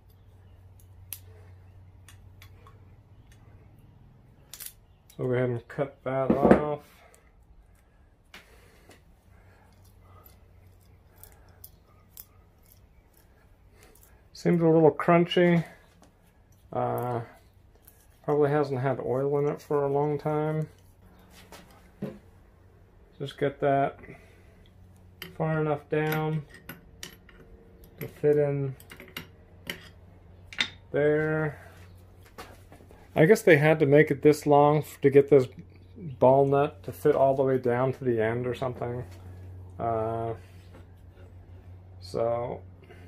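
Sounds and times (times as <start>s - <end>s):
faint handling sounds: 6.7s - 23.4s.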